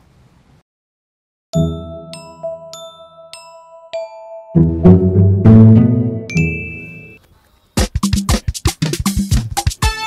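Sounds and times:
low held chords: 1.6 - 3.3, 4.4 - 7.1
bright high ding: 6.3 - 7.2.

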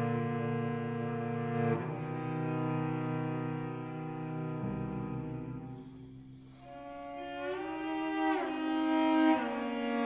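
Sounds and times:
cello bowing sustained notes: 0.0 - 10.0.

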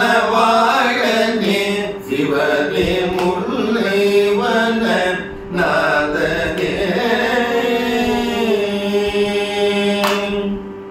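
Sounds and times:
two men singing together: 0.0 - 10.8.

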